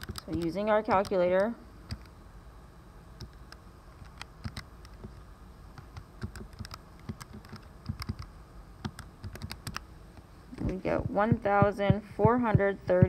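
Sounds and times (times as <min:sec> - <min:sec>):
calculator keys clicking: 0:06.2 - 0:09.8.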